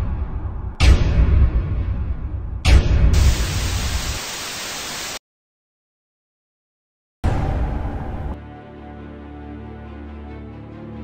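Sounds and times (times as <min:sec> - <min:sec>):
loud hissing static: 0:03.2 - 0:05.2.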